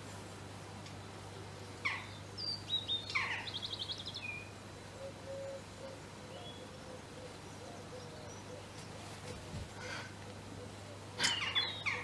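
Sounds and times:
songbird singing: 1.3 - 9.6, 10.2 - 12.0.

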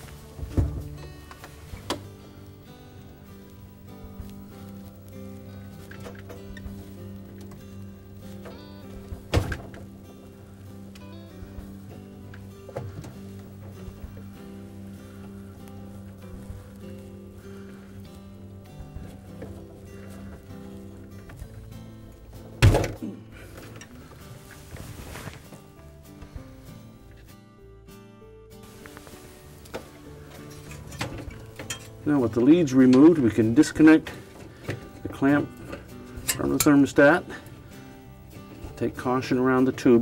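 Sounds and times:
soft background music: 0.0 - 40.0.

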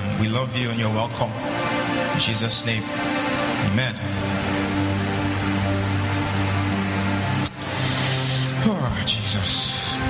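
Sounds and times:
sustained low music chords: 0.0 - 10.0.

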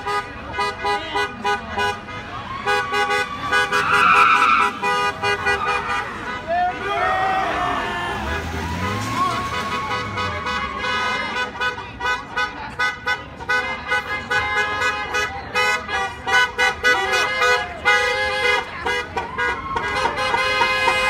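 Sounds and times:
car horns tooting: 0.0 - 21.0
pickup truck engine rumbling: 0.0 - 21.0.

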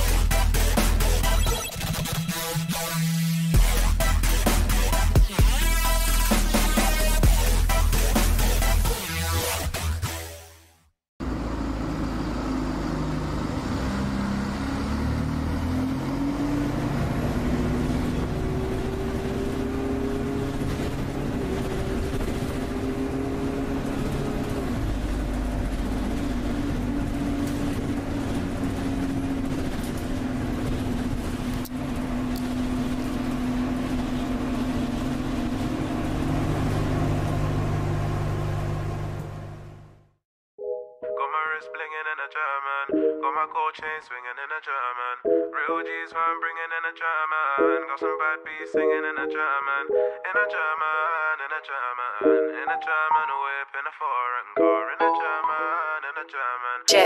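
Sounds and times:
car engine running: 11.2 - 40.2.

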